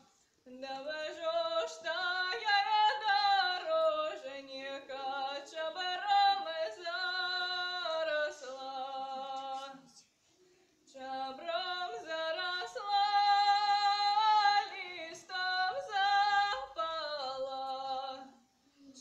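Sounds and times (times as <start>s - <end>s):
woman singing unaccompanied: 0.0s - 10.0s, 10.9s - 19.0s.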